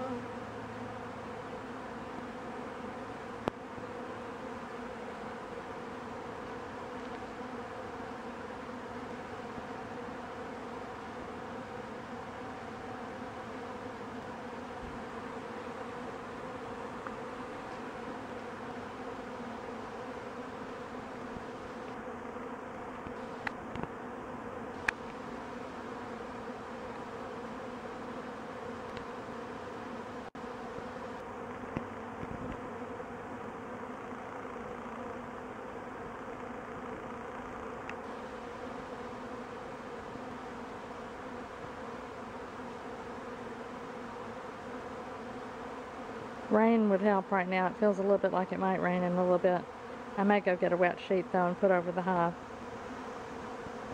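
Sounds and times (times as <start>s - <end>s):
bees buzzing: 0.0s - 53.9s.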